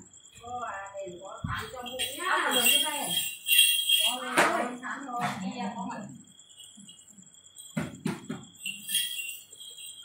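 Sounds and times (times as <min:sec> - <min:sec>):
jingle bells ringing: 0:01.5 - 0:04.8, 0:06.2 - 0:07.8, 0:08.4 - 0:10.0
sharp knocks: 0:07.7 - 0:08.5.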